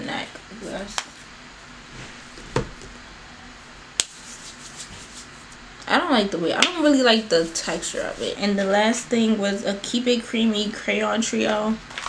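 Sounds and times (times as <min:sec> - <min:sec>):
fingers rubbing skin: 0:04.0 - 0:05.6.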